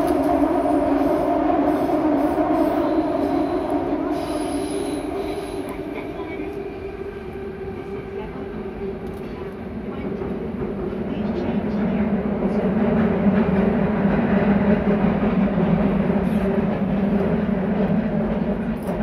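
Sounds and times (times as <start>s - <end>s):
subway train rumble and hum: 0.0s - 19.0s.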